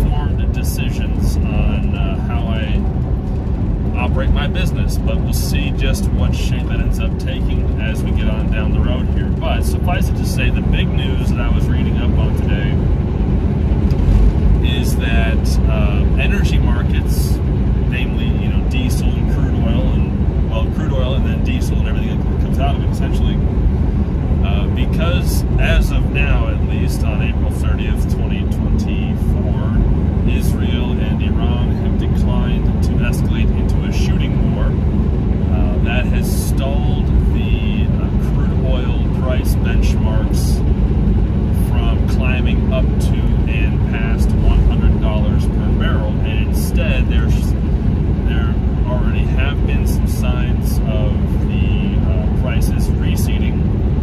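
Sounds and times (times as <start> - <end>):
man talking: 0.0 - 2.9, 3.9 - 12.9, 14.6 - 23.5, 24.4 - 34.8, 35.5 - 40.6, 41.5 - 47.6, 48.2 - 53.7
road noise: 0.0 - 54.0
truck engine drone: 0.0 - 54.0.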